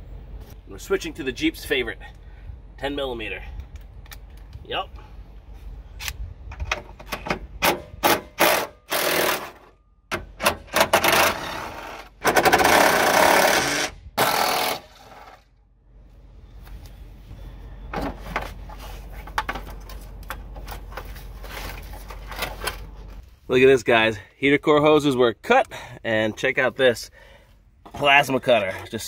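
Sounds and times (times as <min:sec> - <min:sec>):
impact driver running in bursts: 0:11.0 - 0:15.4.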